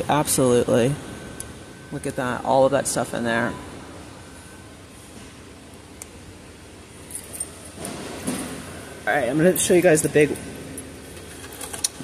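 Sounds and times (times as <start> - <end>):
low store hum: 0.0 - 12.0.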